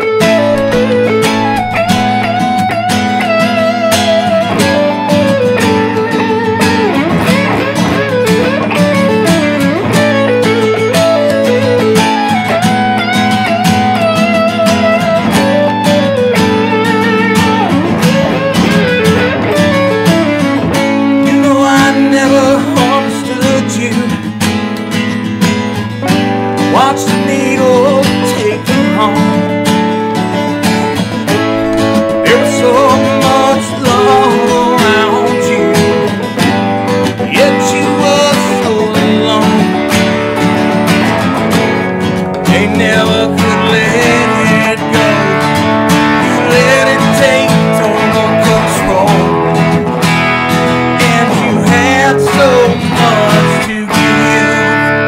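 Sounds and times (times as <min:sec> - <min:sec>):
acoustic guitar strummed: 0:00.0 - 0:55.0
electric guitar playing: 0:00.0 - 0:55.0.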